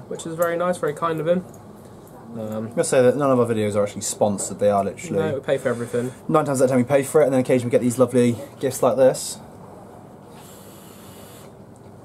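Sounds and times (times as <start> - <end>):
vape hiss: 10.3 - 11.6.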